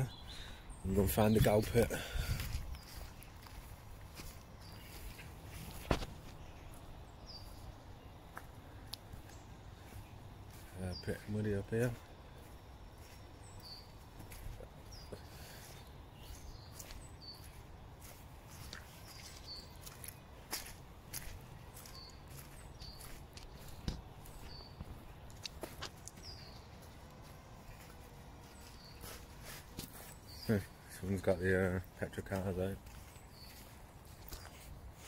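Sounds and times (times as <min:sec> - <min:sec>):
footsteps on dry leaves: 0:00.0 - 0:35.0
songbird calling: 0:00.0 - 0:35.0.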